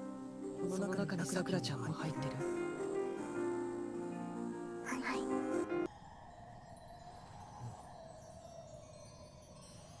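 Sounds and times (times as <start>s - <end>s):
chime-like ringing tone: 5.9s - 10.0s.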